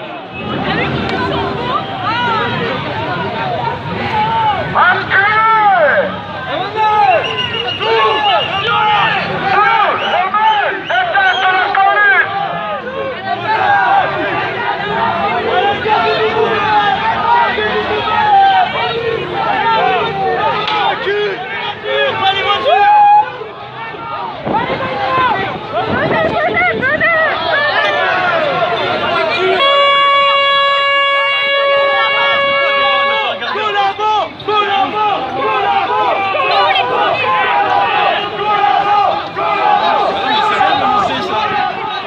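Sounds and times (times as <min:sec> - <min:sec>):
crowd shouting and jeering: 0:00.0 - 0:42.0.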